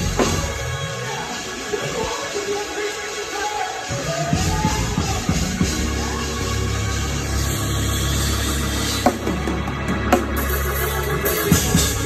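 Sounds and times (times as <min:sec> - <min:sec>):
drum hits with cymbals: 0:00.0 - 0:12.0
organ playing low chord: 0:04.4 - 0:12.0.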